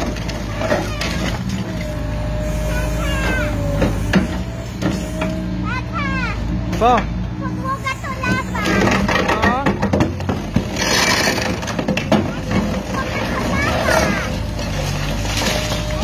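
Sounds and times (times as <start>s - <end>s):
excavator engine running: 0.0s - 16.0s
concrete cracking and knocking: 8.7s - 16.0s.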